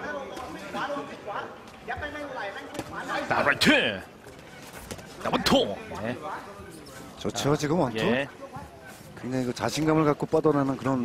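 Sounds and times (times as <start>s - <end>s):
man talking: 7.2s - 8.4s.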